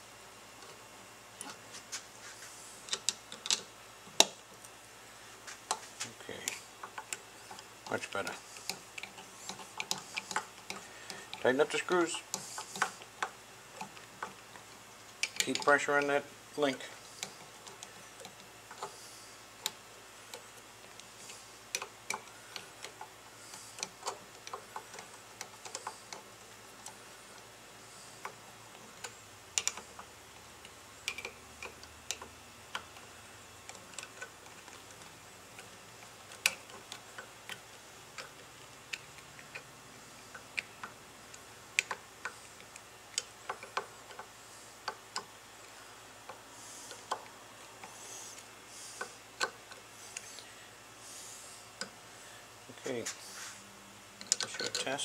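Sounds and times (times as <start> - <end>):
screwdriver metallic clicks and taps: 2.9 - 4.4, 29.0 - 33.0, 41.8 - 45.3.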